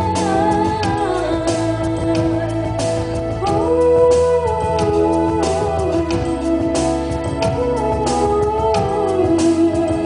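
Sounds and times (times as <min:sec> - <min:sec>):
backing track with drum beat: 0:00.0 - 0:10.0
woman singing into microphone: 0:00.0 - 0:10.0.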